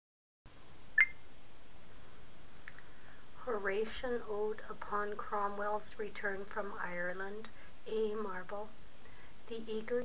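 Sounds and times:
faint room hiss: 0.5s - 10.0s
short electronic beep: 1.0s - 1.2s.

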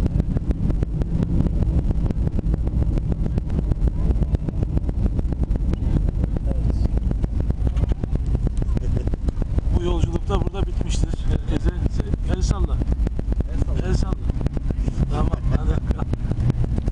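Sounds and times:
airliner cabin roar: 0.0s - 16.9s
fast rattling: 0.0s - 16.9s
passengers talking: 0.0s - 16.9s.

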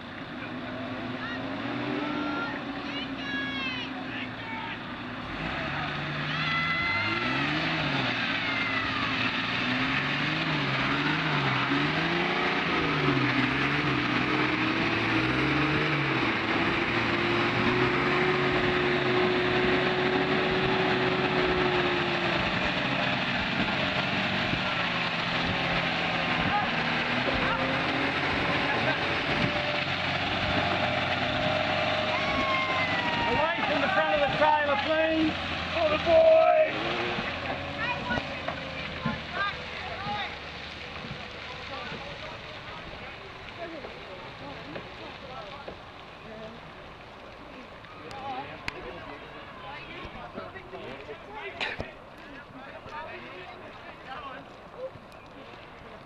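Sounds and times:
vehicle engines revving under load: 0.0s - 56.0s.

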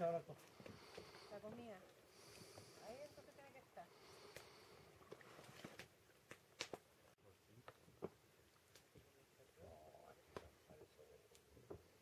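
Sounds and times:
campfire crackling and popping: 5.7s - 9.2s.

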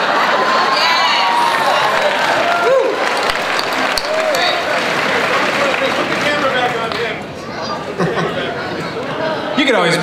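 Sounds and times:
audience applauding and cheering: 0.0s - 7.2s.

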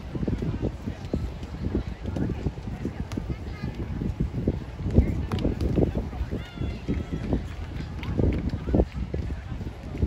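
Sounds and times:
voices in background: 0.0s - 10.0s
wind buffeting microphone: 0.0s - 10.0s.

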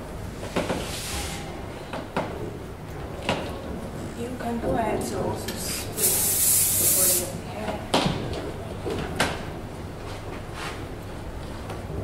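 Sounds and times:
hairspray hiss: 5.7s - 7.3s.

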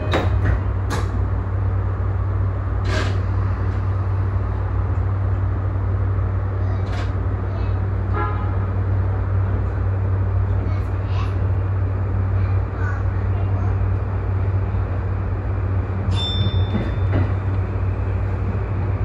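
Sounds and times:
electric train running hum: 0.0s - 19.0s
brief tone: 16.1s - 17.1s.

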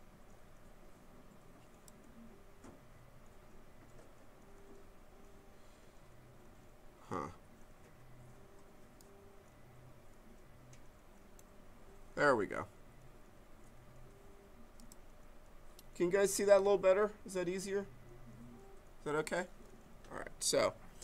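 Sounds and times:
computer mouse clicks: 1.3s - 5.4s, 7.6s - 11.6s, 13.2s - 16.0s.

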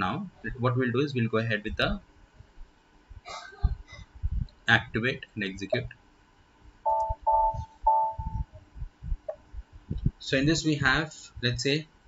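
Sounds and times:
short electronic beeps: 6.9s - 8.4s
faint low thumps: 6.9s - 10.7s.

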